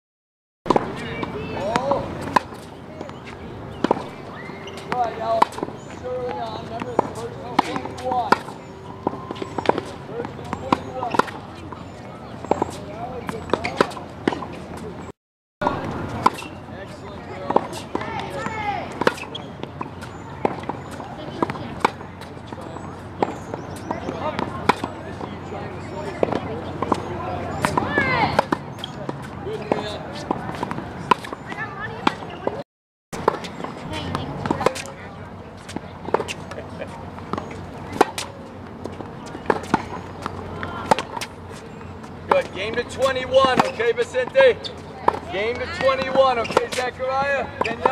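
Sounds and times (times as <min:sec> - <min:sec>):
tennis balls bouncing on hard court: 0:00.7 - 0:32.6, 0:33.2 - 0:47.9
tennis balls struck by rackets: 0:00.7 - 0:32.6, 0:33.2 - 0:47.9.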